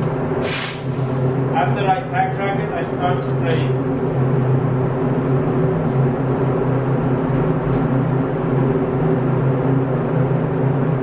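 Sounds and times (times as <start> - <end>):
steady low hum: 0.0 - 11.0
spray gun air hiss: 0.4 - 1.2.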